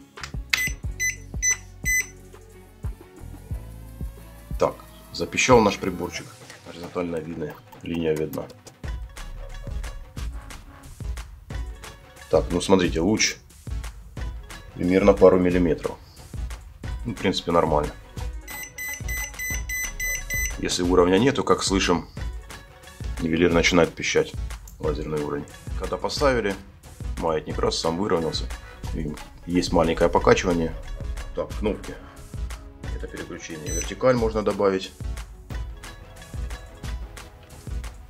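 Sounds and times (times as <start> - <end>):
background music: 0.0 - 38.0
laser level beeping: 18.5 - 20.6.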